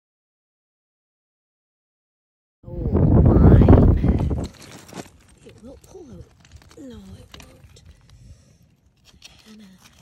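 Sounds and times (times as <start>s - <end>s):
beach stones clicking: 4.0s - 10.0s
quiet rustling: 4.1s - 10.0s.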